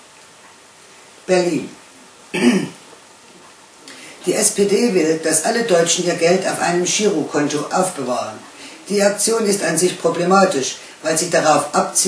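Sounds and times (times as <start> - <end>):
woman clearing her throat: 2.3 - 2.8.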